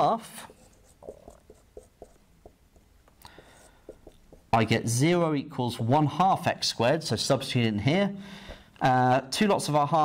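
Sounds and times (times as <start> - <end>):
marker writing on whiteboard: 0.0 - 4.8.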